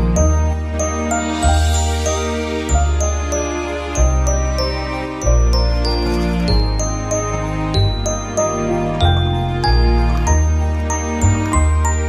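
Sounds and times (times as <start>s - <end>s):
gentle instrumental tune: 0.0s - 12.0s.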